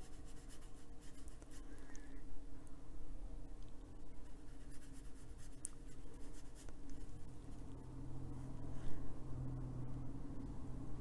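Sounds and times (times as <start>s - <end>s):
brush strokes on paper: 0.0s - 1.7s
low hum: 5.9s - 11.0s.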